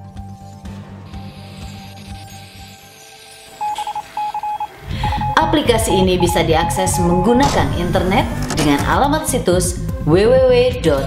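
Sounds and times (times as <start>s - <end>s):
rapid short electronic beeps: 3.6s - 7.6s.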